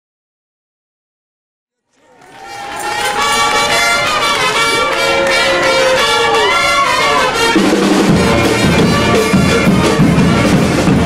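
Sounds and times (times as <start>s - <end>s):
festive brass band playing: 2.1s - 11.0s.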